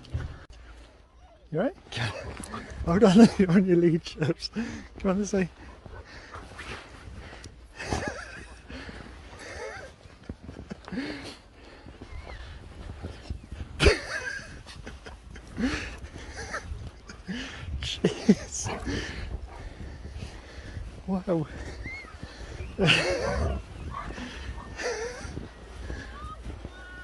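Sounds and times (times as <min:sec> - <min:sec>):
snow crunching: 0:01.8 - 0:27.0.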